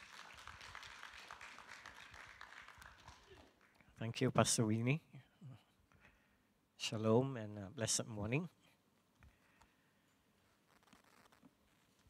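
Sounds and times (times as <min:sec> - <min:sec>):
faint scattered applause: 0:00.0 - 0:03.9.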